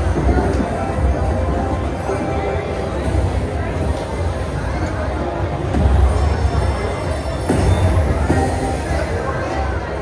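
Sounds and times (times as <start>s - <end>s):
casino floor chatter and hum: 0.0s - 10.0s.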